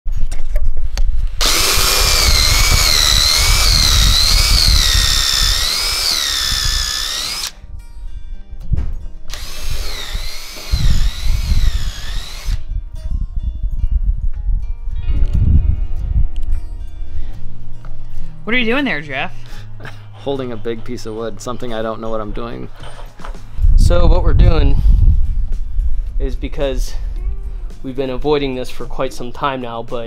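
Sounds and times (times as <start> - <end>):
power drill boring into wood: 1.4 - 7.6, 9.3 - 12.6.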